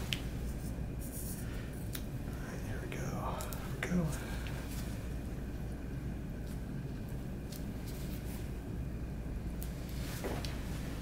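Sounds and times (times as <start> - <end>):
low room hum: 0.0 - 11.0
soft whispered speech: 2.3 - 4.9.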